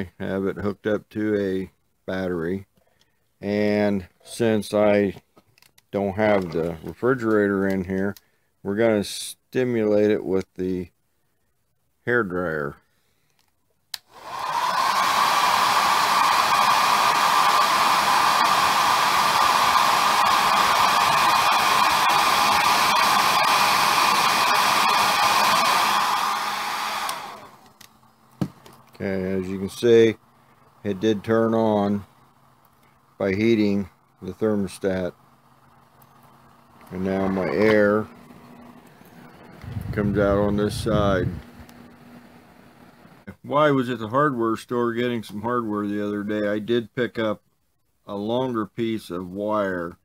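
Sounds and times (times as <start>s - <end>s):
small fan humming: 13.1s - 46.6s
hair dryer blowing: 14.1s - 28.8s, 36.8s - 43.2s
low rumble: 39.4s - 41.5s.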